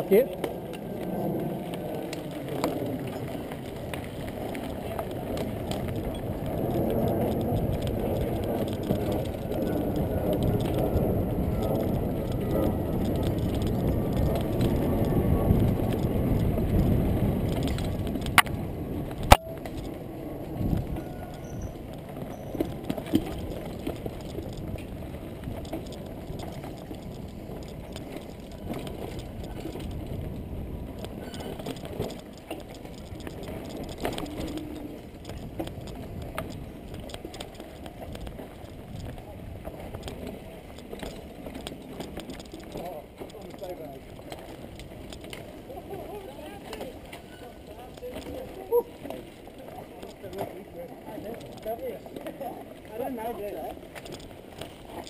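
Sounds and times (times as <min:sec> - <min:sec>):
bike frame rattling: 0:00.0 - 0:55.0
bike tyres rumbling on dirt: 0:00.0 - 0:55.0.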